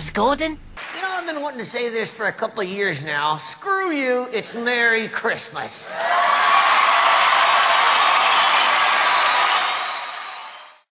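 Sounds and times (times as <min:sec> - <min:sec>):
audience applauding and cheering: 0:00.8 - 0:01.9, 0:05.9 - 0:10.9.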